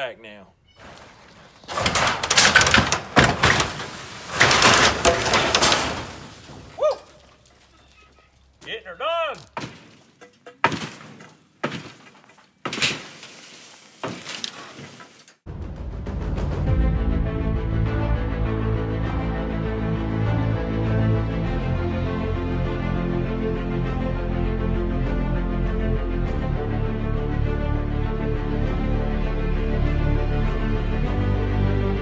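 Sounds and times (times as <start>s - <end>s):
lumber knocks and thuds: 0.8s - 6.8s, 9.4s - 13.2s, 14.0s - 15.2s
crashing and rattling metal and wood: 0.8s - 8.2s, 9.4s - 15.4s
background music: 15.5s - 32.0s.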